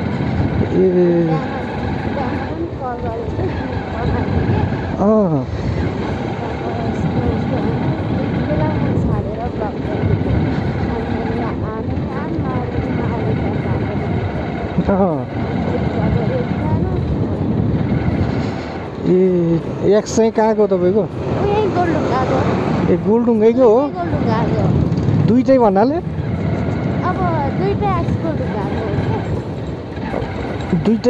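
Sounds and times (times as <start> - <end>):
motorcycle engine running: 0.0 - 31.0
wind rumble on microphone: 0.0 - 31.0.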